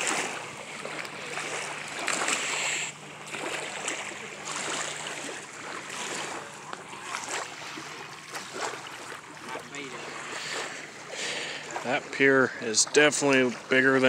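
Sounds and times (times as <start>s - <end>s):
waves lapping against pier: 0.0s - 14.0s.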